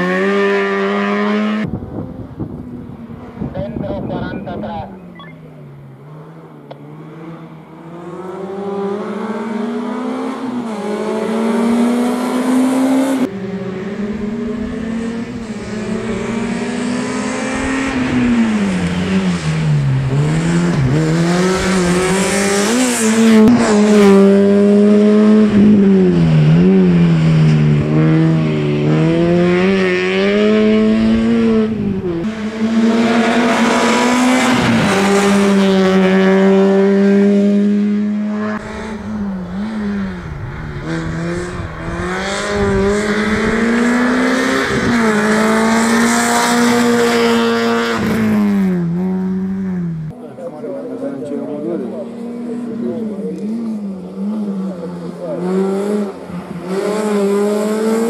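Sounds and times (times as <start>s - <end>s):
race car engine revving: 0.0s - 58.0s.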